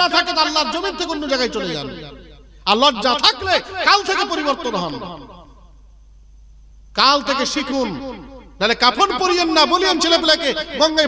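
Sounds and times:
man preaching over loudspeakers: 0.0 - 5.5, 6.9 - 11.0
sound system hum: 0.0 - 11.0.

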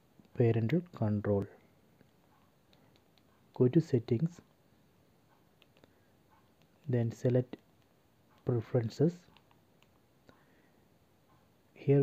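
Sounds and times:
man speaking: 0.3 - 1.6, 3.5 - 4.5, 6.8 - 7.6, 8.4 - 9.3, 11.8 - 12.0.

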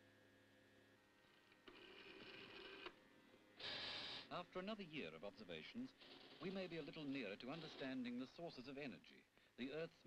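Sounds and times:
faint machine noise: 0.0 - 10.0.

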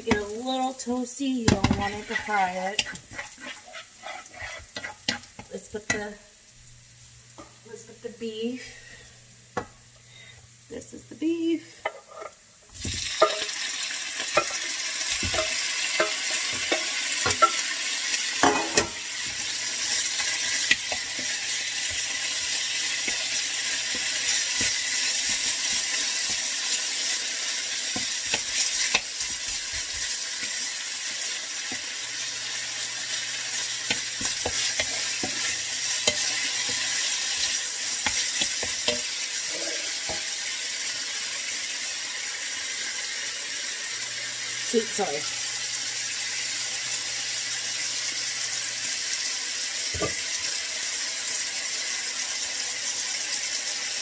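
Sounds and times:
beef sizzling in a pan: 0.0 - 54.0.

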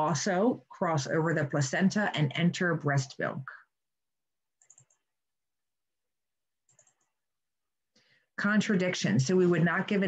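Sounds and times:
faint computer clicking: 4.5 - 5.2, 6.6 - 7.2.

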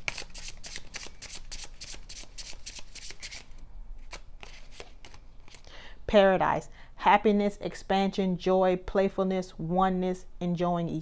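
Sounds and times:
cards being shuffled by hand: 0.0 - 5.7.

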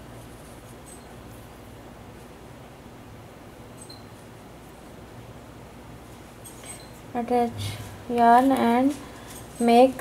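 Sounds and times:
low room hum and hiss: 0.0 - 10.0.

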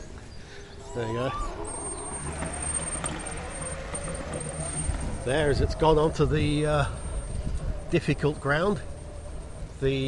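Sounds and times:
toy electric motors whining: 0.0 - 10.0
robot lawnmower running: 1.0 - 10.0.

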